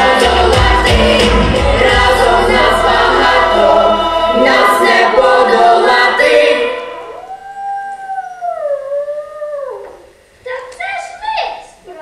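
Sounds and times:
wolf-like howl: 0:06.9 - 0:10.0.

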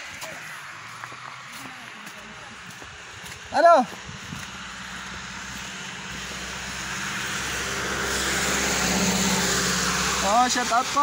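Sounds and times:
car engine hum: 0:00.0 - 0:11.0
tyre hiss on wet street: 0:00.0 - 0:11.0.

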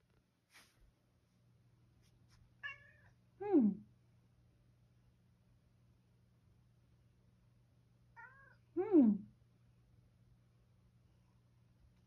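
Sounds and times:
cat meowing: 0:02.6 - 0:03.1, 0:08.2 - 0:08.6.

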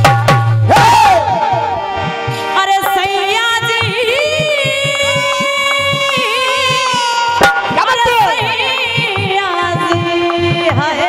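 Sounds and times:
dholak strokes: 0:00.0 - 0:11.0
harmonium chord: 0:01.4 - 0:11.0.

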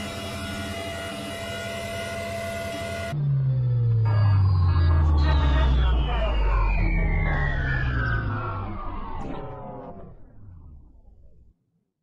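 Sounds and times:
computer jingle sliding down in pitch: 0:03.2 - 0:10.6.

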